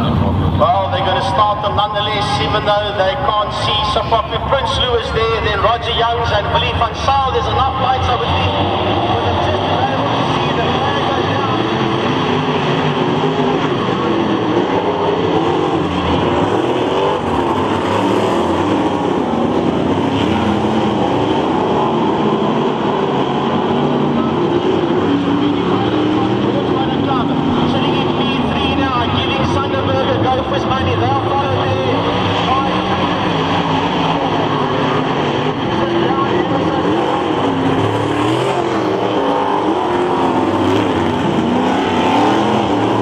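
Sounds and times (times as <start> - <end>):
race car engines: 0.0 - 43.0.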